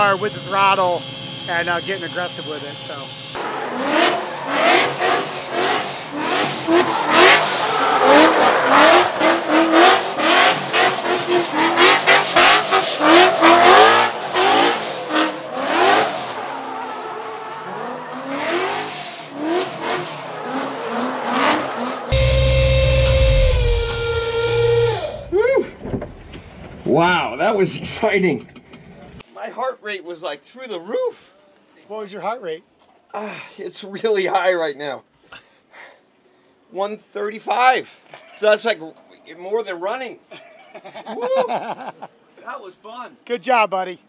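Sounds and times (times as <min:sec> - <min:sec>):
tyres screeching: 0:02.4 - 0:22.8
car engine revving: 0:03.1 - 0:25.3.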